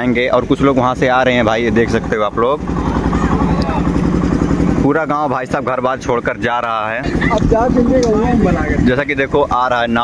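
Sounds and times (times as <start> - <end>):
small engine running: 0.0 - 10.0
faint voices: 2.5 - 4.9.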